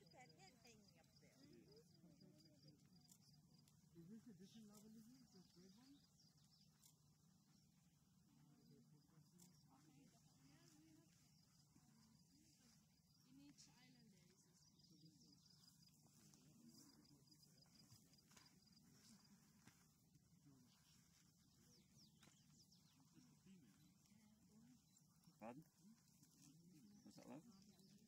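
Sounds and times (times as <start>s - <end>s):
faint distant voices: 0.0s - 28.0s
outdoor background sound: 0.0s - 28.0s.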